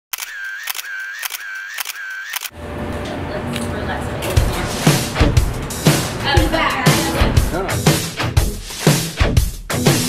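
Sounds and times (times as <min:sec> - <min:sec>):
camera shutter clicking: 0:00.1 - 0:02.6
outdoor background noise: 0:00.1 - 0:07.4.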